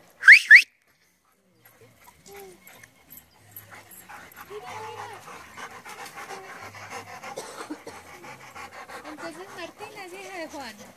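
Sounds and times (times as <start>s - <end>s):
dogs panting: 1.0s - 10.9s.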